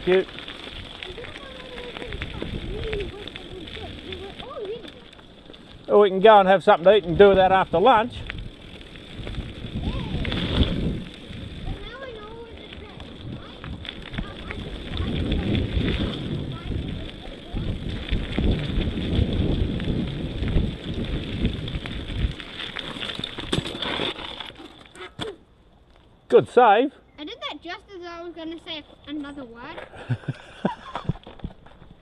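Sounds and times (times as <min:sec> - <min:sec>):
wind noise: 0:00.0 - 0:25.1
bike rattling over bumps: 0:00.0 - 0:26.1, 0:28.8 - 0:32.0
bike tyres rumbling on dirt: 0:00.0 - 0:26.7.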